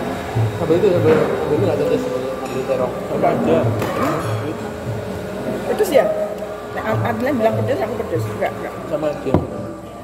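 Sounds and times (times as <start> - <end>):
faint background music: 0.0 - 10.0
people talking: 0.6 - 4.7, 6.8 - 9.6.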